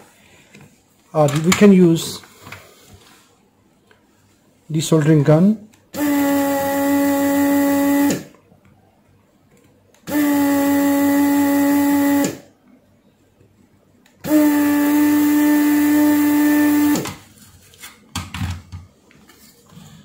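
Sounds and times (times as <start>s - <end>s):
desoldering pump motor humming: 6.0s - 8.3s, 10.1s - 12.4s, 14.2s - 17.1s.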